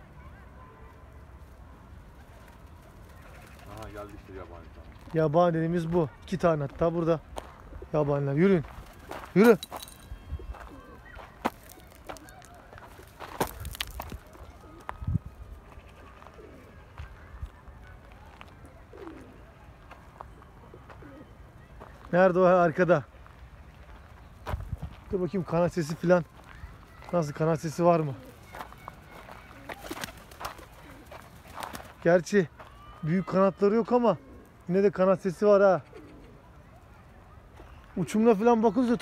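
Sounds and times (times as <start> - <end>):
faint bird calls: 8.7 - 22.2, 35.8 - 38.2
pigeon wing claps: 28.7 - 31.9.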